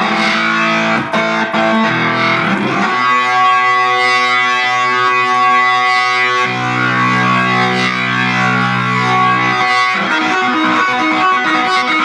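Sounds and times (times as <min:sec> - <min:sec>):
distorted electronic organ chords: 0:00.0 - 0:12.0.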